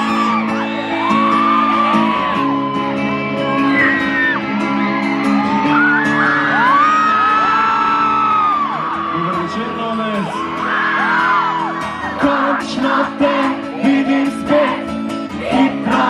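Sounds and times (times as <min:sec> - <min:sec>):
live rock band playing loudly: 0:00.0 - 0:08.4
crowd whooping and shouting: 0:00.0 - 0:16.0.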